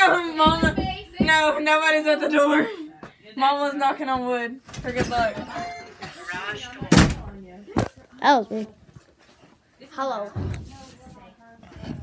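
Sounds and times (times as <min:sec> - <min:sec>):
knocking on wood: 0:00.4 - 0:01.5.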